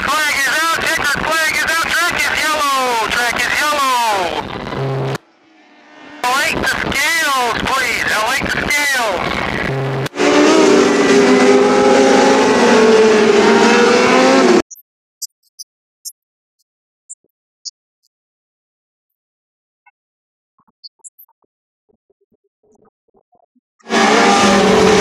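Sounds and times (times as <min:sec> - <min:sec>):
racing car engines: 0:02.4 - 0:14.6, 0:23.8 - 0:25.0
engine note dropping in pitch: 0:09.7 - 0:14.6.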